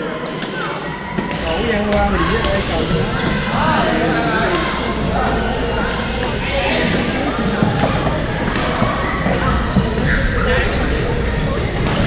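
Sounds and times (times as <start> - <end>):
chatter of many players: 0.0 - 12.0.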